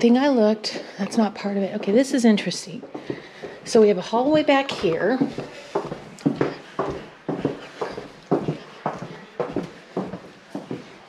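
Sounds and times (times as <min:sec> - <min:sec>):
footsteps on hardwood floor: 0:00.0 - 0:11.0.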